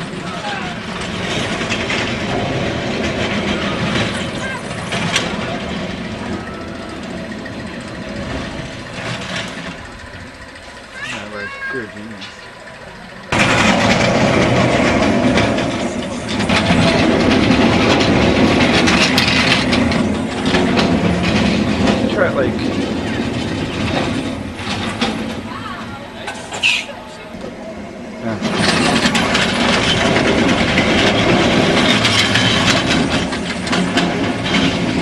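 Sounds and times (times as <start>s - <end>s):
roller coaster rumbling on track: 0.0s - 35.0s
riders' voices: 10.1s - 13.3s, 21.8s - 23.4s, 25.4s - 29.2s.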